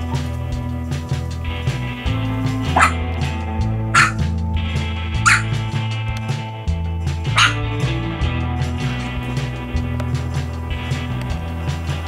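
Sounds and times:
background music: 0.0 - 12.0
puppy yapping: 2.8 - 3.0, 4.0 - 4.2, 5.2 - 5.5, 7.4 - 7.6.

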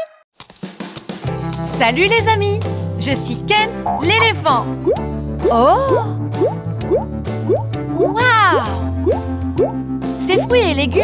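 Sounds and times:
children's background music: 1.2 - 11.0.

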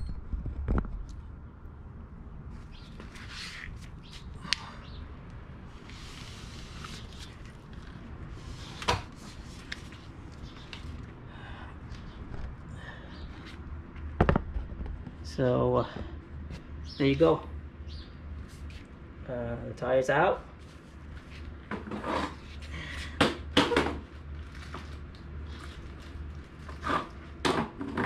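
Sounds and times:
scuffs of tyre being handled: 2.7 - 4.3.

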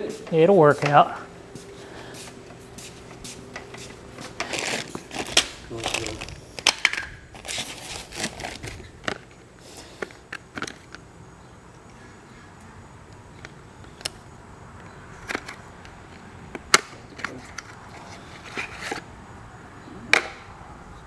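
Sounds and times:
rummaging in cardboard box: 4.2 - 6.4, 7.3 - 8.9.

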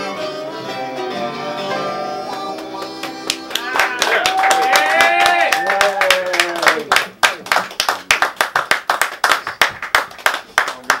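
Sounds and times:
harmonica and acoustic guitars: 0.0 - 4.0
small audience clapping: 2.3 - 11.0.

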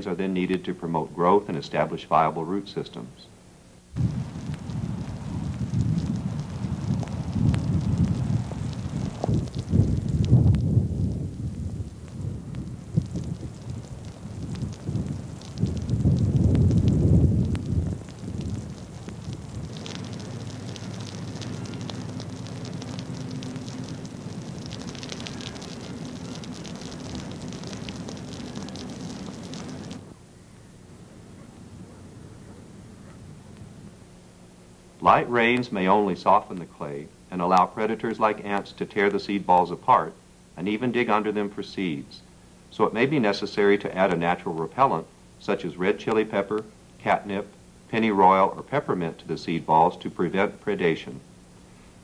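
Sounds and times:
low rolling thunder: 4.0 - 30.1
rain falling into water: 4.0 - 30.2.

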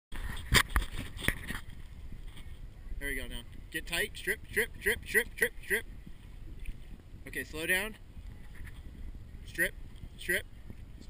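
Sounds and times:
steady low rumble: 0.1 - 11.0.

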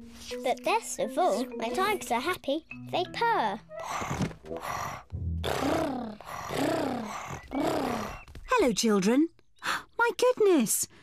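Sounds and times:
cartoon children's voices purring: 4.7 - 8.3.

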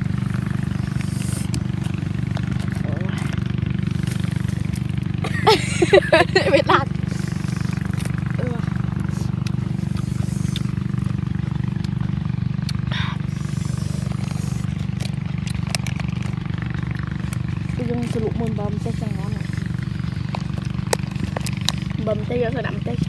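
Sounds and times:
motor humming: 0.0 - 23.0.

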